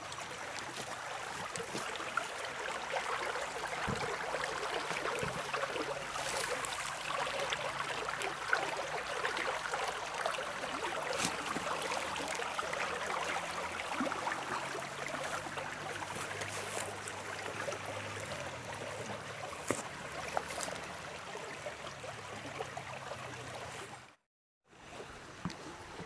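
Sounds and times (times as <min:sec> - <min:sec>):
water running in a stream: 0:00.0 - 0:26.0.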